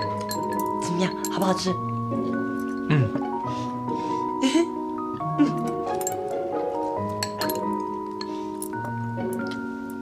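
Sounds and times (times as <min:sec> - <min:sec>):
chopsticks clinking on bowls: 0:00.0 - 0:01.8, 0:05.6 - 0:09.6
bell-like background music: 0:00.0 - 0:10.0.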